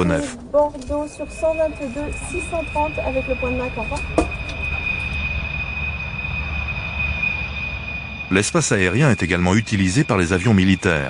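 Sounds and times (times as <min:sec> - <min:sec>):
jet engines whining: 0:00.0 - 0:11.0.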